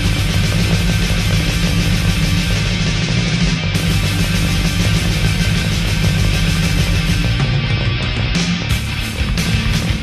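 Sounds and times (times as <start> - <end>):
electric guitar: 0.0 - 10.0
heavy metal band playing: 0.0 - 10.0.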